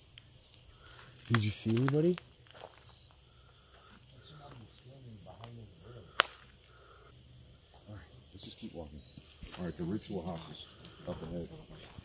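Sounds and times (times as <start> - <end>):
high-pitched insect trill: 0.0 - 12.0
faint footsteps: 0.9 - 5.6, 9.1 - 12.0.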